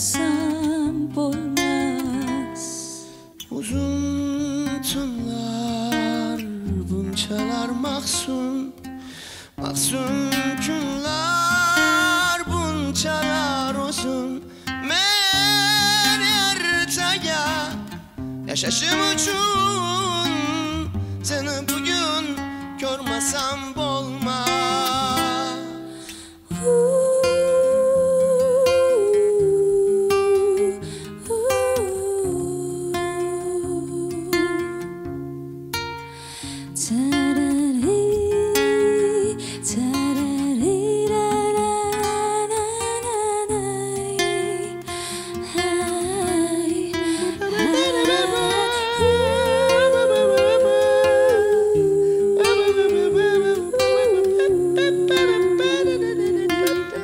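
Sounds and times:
person singing with vibrato: 0.0 - 34.9, 36.2 - 57.0
fingerpicked classical guitar: 0.0 - 57.0
woman singing a held note: 26.5 - 34.4, 45.6 - 57.0.

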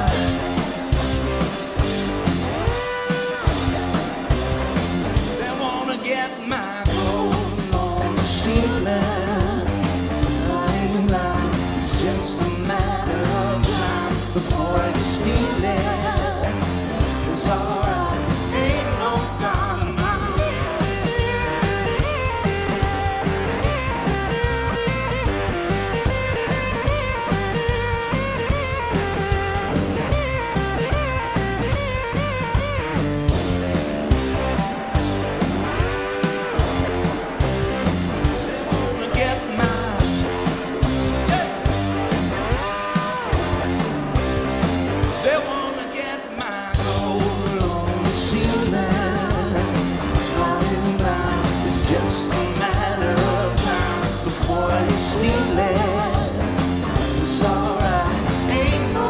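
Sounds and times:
bending lead guitar line: 0.0 - 59.0
blues-rock band playing: 0.0 - 59.0.

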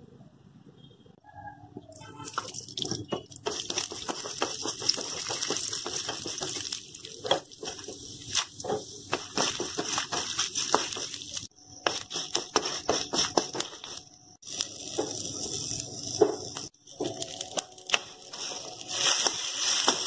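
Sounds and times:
food sizzling in hot oil: 2.2 - 20.0
spatula scraping a pan: 18.3 - 20.0.

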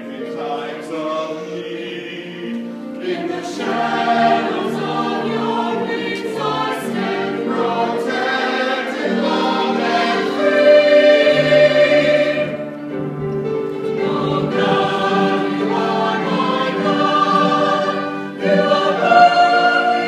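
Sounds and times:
choir singing a hymn: 0.0 - 20.0.

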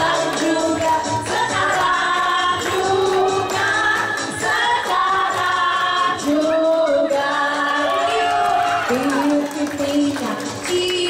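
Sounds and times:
backing music: 0.0 - 11.0
group of voices singing: 0.0 - 11.0
hands clapping: 0.0 - 11.0
woman singing into microphone: 0.0 - 11.0.

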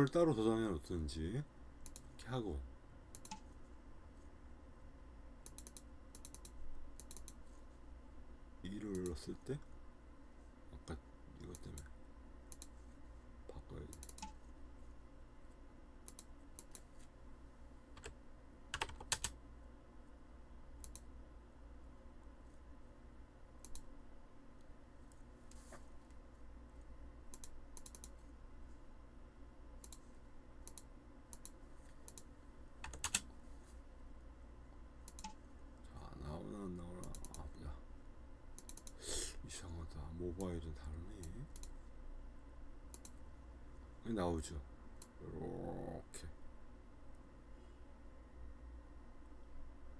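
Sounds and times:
faint steady hum: 0.0 - 49.9
computer mouse clicks: 1.8 - 2.3, 3.1 - 3.6, 5.4 - 7.6, 8.9 - 9.2, 11.4 - 11.9, 12.5 - 12.8, 13.8 - 14.4, 16.0 - 17.1, 17.9 - 19.4, 20.8 - 21.1, 23.6 - 23.9, 27.3 - 28.2, 29.8 - 33.3, 35.0 - 35.4, 37.0 - 37.5, 38.6 - 39.0, 41.2 - 41.9, 42.9 - 43.2
keyboard key presses: 18.0 - 19.4, 31.4 - 33.2.

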